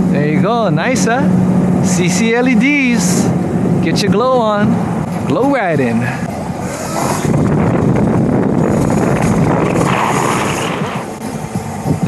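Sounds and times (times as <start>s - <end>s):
road noise: 0.0s - 12.0s
rushing wind: 0.0s - 12.0s.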